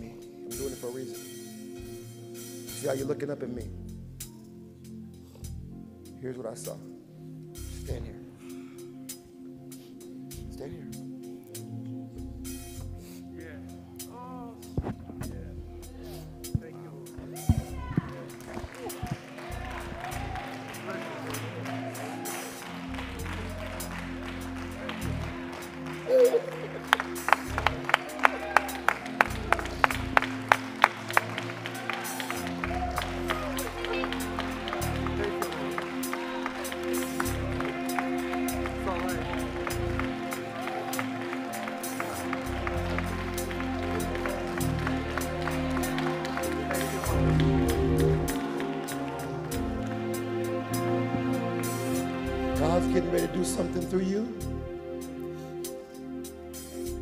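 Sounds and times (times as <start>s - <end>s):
keyboard chords: 0.0s - 57.0s
light ticking rhythm: 0.0s - 57.0s
soft worship band music: 0.0s - 57.0s
bass guitar notes: 7.6s - 8.3s, 14.5s - 20.8s, 22.8s - 31.8s, 32.4s - 41.3s, 42.1s - 54.8s
hands clapping in a steady beat: 14.0s - 15.5s, 16.1s - 54.0s.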